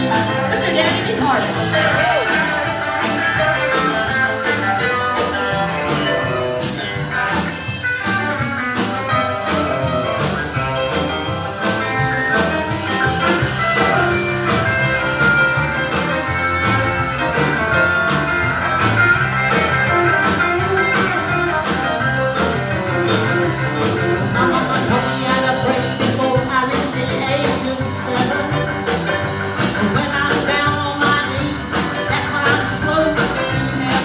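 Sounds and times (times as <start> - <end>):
electric guitar solo: 0.0 - 33.9
drum-kit beat: 0.0 - 34.0
keyboard: 0.0 - 34.0
upright bass: 0.0 - 34.0.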